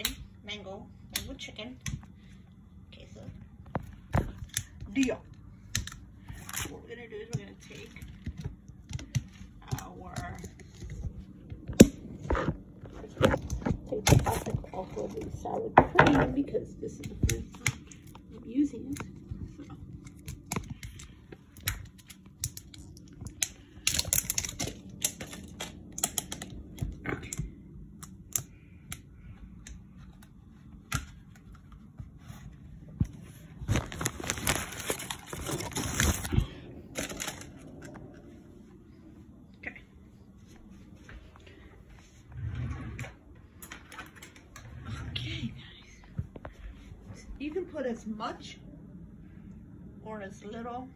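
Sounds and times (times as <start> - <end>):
plastic bag crinkling: 22.4 - 26.6, 33.3 - 38.1.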